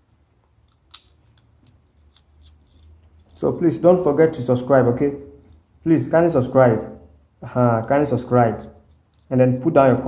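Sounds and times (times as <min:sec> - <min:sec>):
low steady hum: 0:00.0 - 0:10.0
wire clicks and scrapes: 0:00.6 - 0:03.5, 0:08.5 - 0:09.8.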